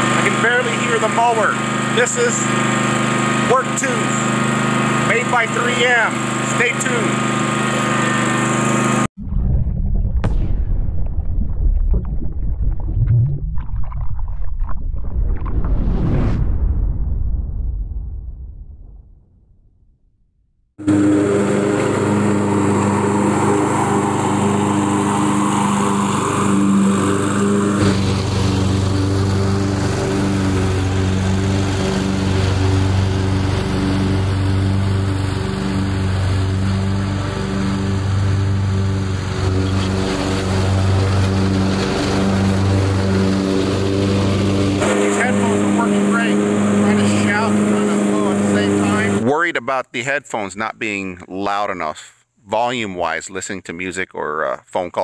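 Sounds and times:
riding mower engine running: 0.0s - 9.1s, 20.8s - 49.4s.

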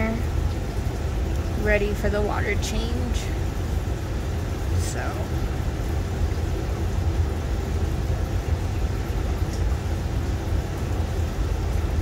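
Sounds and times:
aquarium filter humming: 0.0s - 12.0s
faint water noise: 0.0s - 12.0s.

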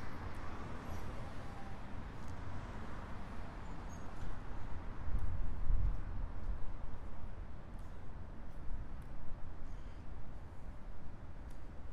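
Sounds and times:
traffic noise: 0.0s - 11.9s.

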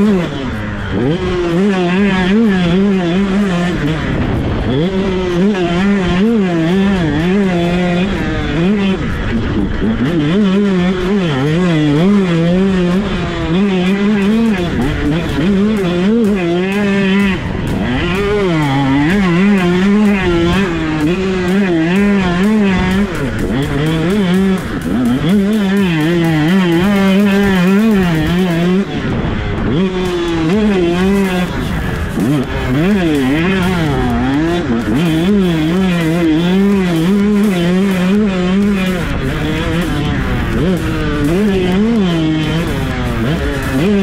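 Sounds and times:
two-stroke motocross engine revving: 0.0s - 44.0s.

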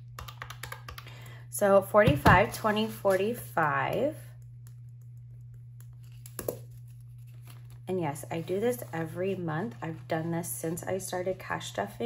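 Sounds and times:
steady low hum: 0.0s - 12.0s
paper rustling: 6.0s - 10.8s.

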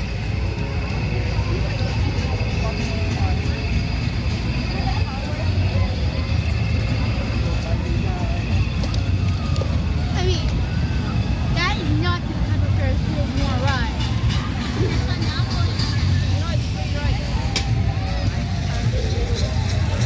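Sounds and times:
faint chatter of people: 0.0s - 20.0s
steady low rumble: 0.0s - 20.0s.

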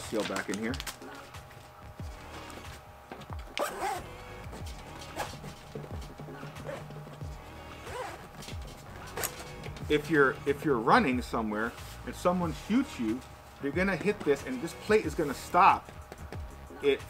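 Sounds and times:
fabric rustling: 0.0s - 10.3s, 11.6s - 16.2s
zipper pulls: 0.4s - 9.8s.

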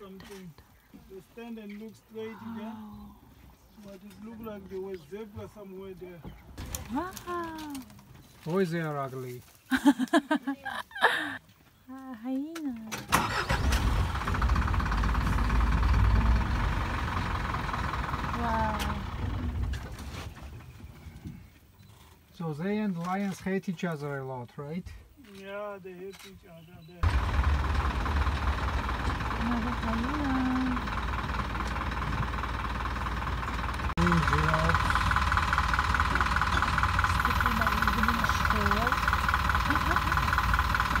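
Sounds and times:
vehicle engine rumbling: 0.0s - 22.9s, 24.9s - 41.0s.

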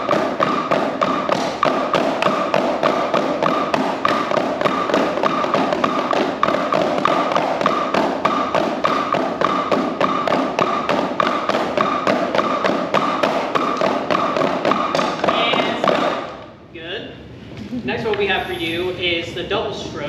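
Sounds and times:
drumsticks striking practice pads: 0.0s - 16.5s.

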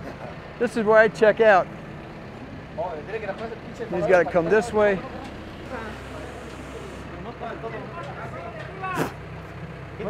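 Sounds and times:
machine engine running: 0.2s - 10.0s
faint calls of workers: 2.5s - 10.0s.

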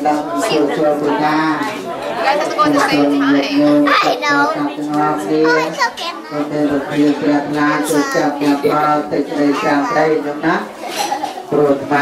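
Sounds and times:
children talking: 0.0s - 12.0s.

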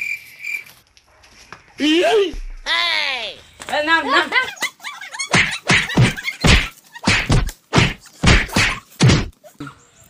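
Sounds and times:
heavy thumps and whacks: 5.3s - 9.4s.

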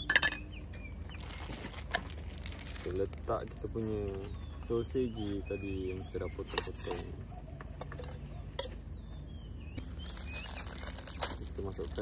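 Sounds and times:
metal lid clinking: 0.0s - 0.4s
faint bird chirps: 3.7s - 11.2s.

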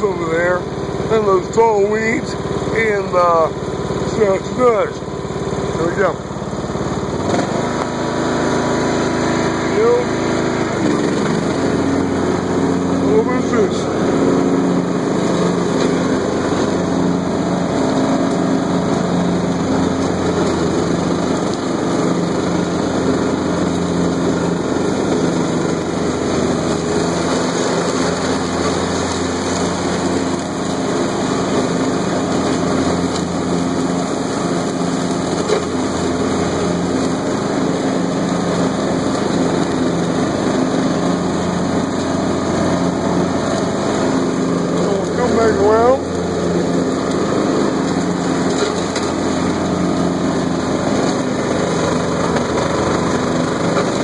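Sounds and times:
mower blades cutting grass: 0.0s - 54.0s
riding lawn tractor engine: 0.0s - 54.0s.

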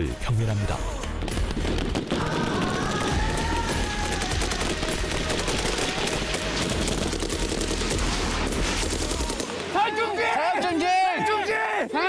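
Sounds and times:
rapid overlapping gunshots: 1.4s - 9.8s
machine gun firing: 1.5s - 9.8s.

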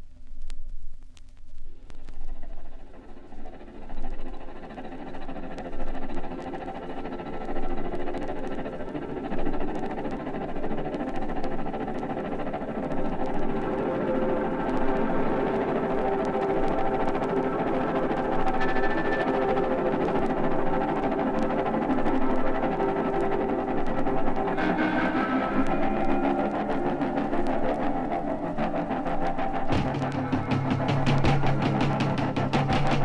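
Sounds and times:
vinyl surface crackle: 0.0s - 33.0s
rock band music: 29.7s - 33.0s.

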